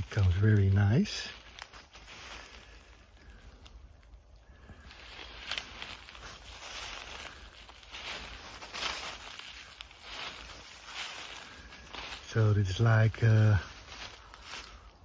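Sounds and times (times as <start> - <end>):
footsteps on dry leaf litter: 0.0 - 15.0.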